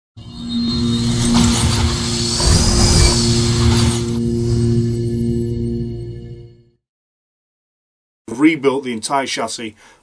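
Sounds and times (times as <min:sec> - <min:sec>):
low sustained drone: 0:00.2 - 0:06.4
whooshing sweep: 0:00.8 - 0:05.3.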